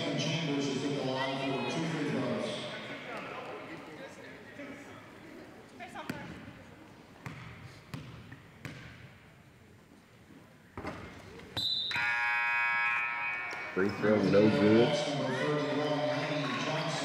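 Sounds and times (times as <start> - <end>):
basketball bouncing on wooden floor: 7.2 - 9.1.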